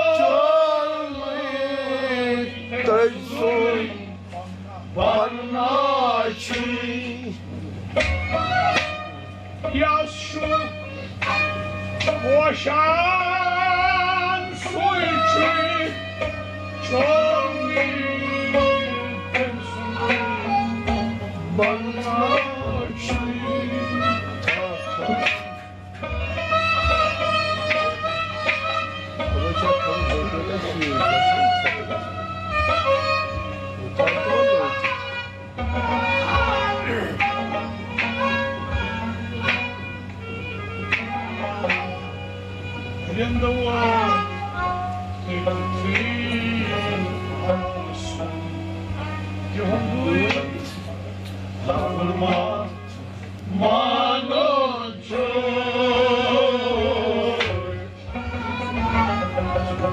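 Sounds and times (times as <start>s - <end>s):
man singing: 0.0s - 7.5s, 9.6s - 11.4s, 12.0s - 25.5s, 33.8s - 40.0s, 43.0s - 59.9s
instrumental accompaniment: 0.0s - 59.9s.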